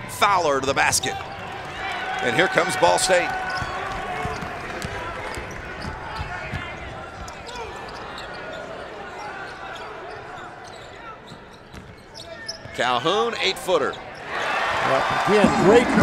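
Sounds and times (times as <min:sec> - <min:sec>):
crowd chatter: 0:14.0 - 0:16.0.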